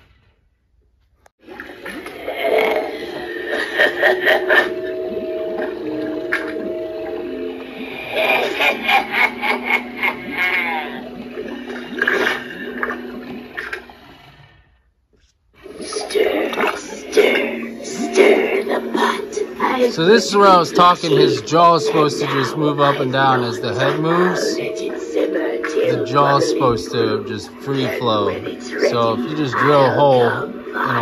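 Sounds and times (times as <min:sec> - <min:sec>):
eerie held tones: 0:01.4 - 0:14.9, 0:15.6 - 0:31.0
watery gurgling: 0:01.4 - 0:31.0.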